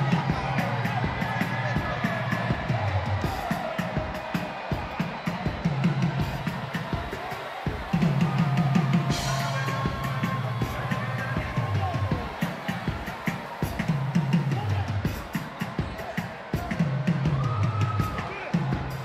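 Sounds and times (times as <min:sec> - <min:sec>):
drum kit solo: 0:00.0 - 0:19.0.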